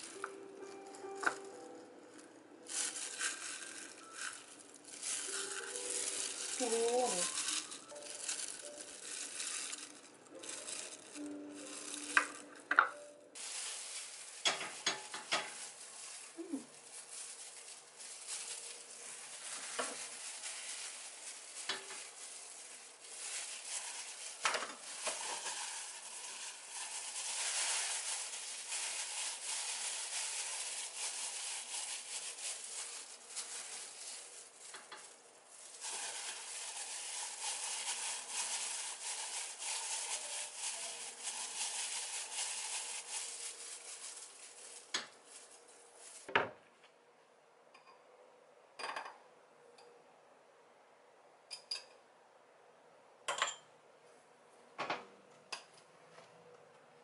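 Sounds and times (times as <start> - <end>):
plastic gloves crinkling: 0.0 - 46.9.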